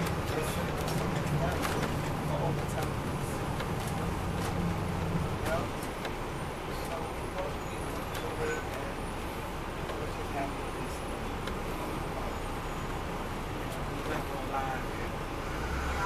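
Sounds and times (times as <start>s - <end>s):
bus engine rumble and road noise: 0.0s - 16.0s.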